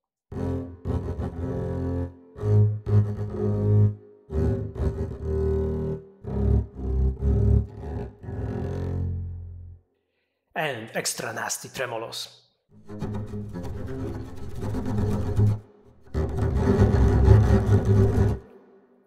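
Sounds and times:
bowed double bass low notes: 0.3s - 9.8s, 12.9s - 18.4s.

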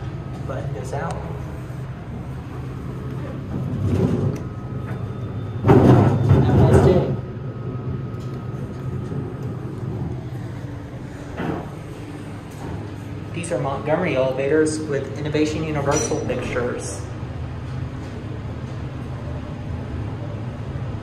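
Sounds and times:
elevator humming: 0.0s - 21.0s.

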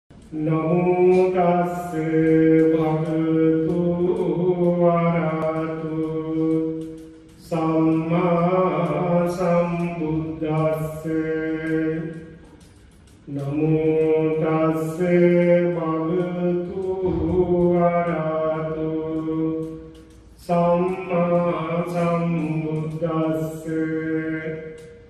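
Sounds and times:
man chanting into a microphone: 0.1s - 25.0s.

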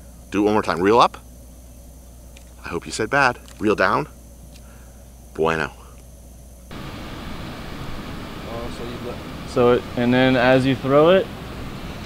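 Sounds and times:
outdoor hiss-like rush: 0.0s - 12.0s.

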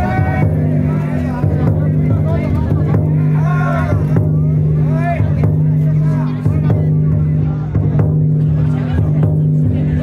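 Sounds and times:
bearers chanting drawn-out calls: 0.0s - 1.6s, 3.2s - 4.1s
taiko drum beats: 0.0s - 10.0s.

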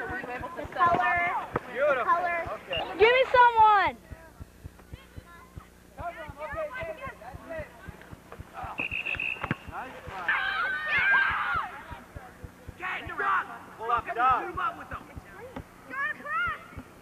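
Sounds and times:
people calling out outdoors: 0.0s - 16.8s
whistle blast: 2.7s - 3.0s, 8.8s - 9.6s
voices shouting: 6.0s - 15.0s.

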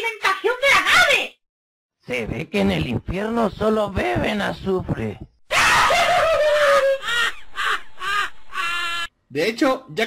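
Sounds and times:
harsh caw-like cry: 5.5s - 9.1s.

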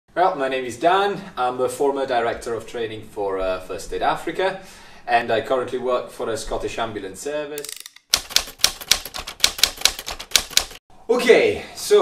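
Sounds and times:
typewriter keys clacking: 7.6s - 10.8s.

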